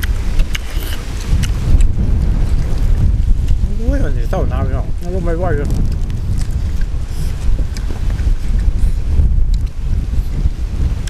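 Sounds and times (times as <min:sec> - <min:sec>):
eating clicks and smacks: 0:00.0 - 0:02.7, 0:05.6 - 0:10.4
wind buffeting microphone: 0:00.0 - 0:11.0.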